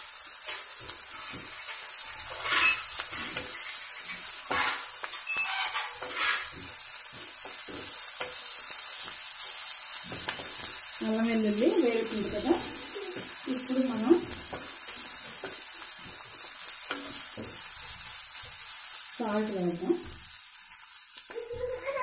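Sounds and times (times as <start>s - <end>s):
onions sizzling in hot oil: 0.0s - 22.0s
spatula scraping a pan: 0.4s - 9.2s, 11.5s - 19.0s.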